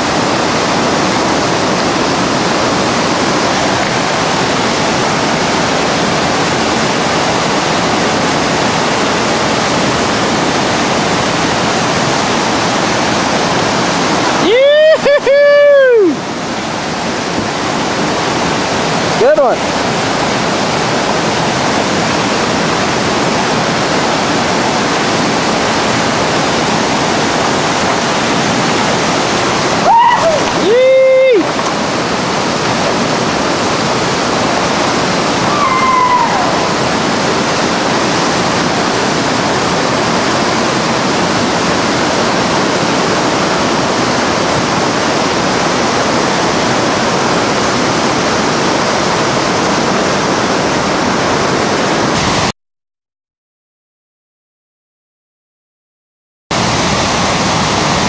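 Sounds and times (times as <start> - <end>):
whitewater rapids rushing: 0.0 - 52.5, 56.5 - 58.0
person shouting: 14.4 - 16.2, 29.8 - 31.5, 35.4 - 36.8
high falling call: 35.3 - 37.3.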